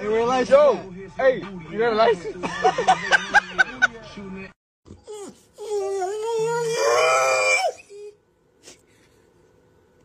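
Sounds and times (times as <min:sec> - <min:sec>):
dog whining howl: 0:05.0 - 0:08.2.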